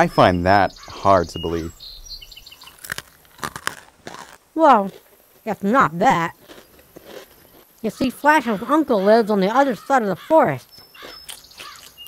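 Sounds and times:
crunching chewing clicks: 2.4 - 8.7, 10.6 - 12.0.

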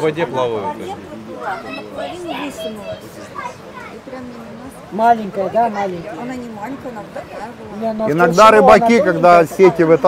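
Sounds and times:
overlapping conversational voices: 0.0 - 10.0.

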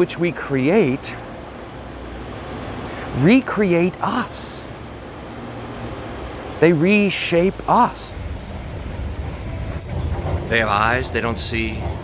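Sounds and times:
low rumbling background noise: 7.4 - 12.0.

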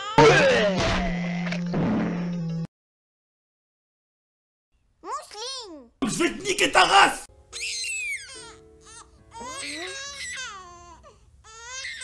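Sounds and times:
cartoon baby crying: 0.0 - 0.6, 7.5 - 10.9, 11.5 - 12.0
soft background music: 6.1 - 12.0.

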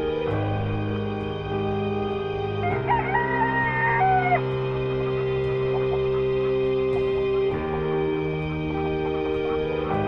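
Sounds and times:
background music: 0.0 - 10.0
rooster crowing: 2.7 - 4.5.

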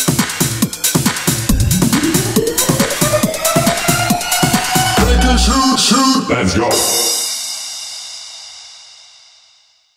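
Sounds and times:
cymbal crash ringing out: 1.5 - 4.9.

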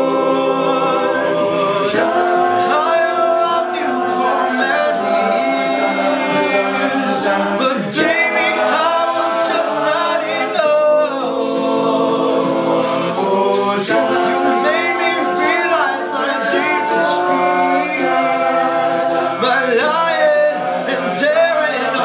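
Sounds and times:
male a cappella group singing: 0.0 - 22.0.

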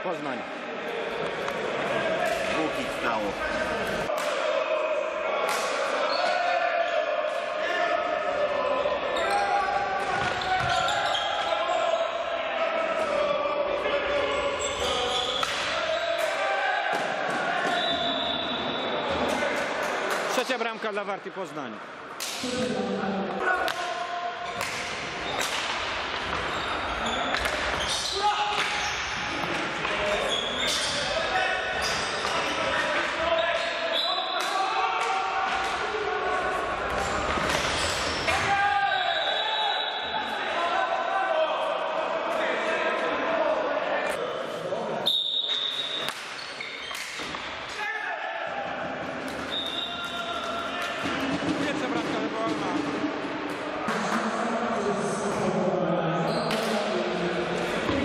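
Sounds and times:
players shouting: 0.7 - 20.3, 22.4 - 44.3, 47.3 - 52.3
hockey sticks striking ball: 24.5 - 26.6, 27.3 - 30.0, 45.5 - 47.8.

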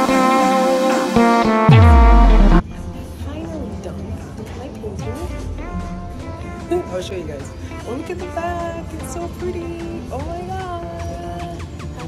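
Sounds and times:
pop music with deep bass: 0.0 - 12.0.

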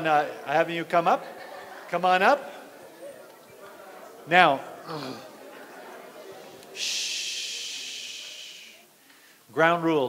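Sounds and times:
hissing breath into microphone: 6.8 - 9.4.

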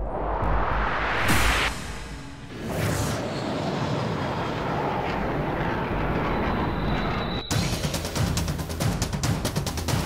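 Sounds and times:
fighter jet engines roaring: 2.5 - 7.5.

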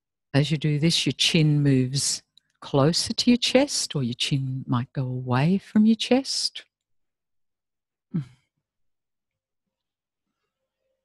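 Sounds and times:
person sighing: 8.1 - 8.4.

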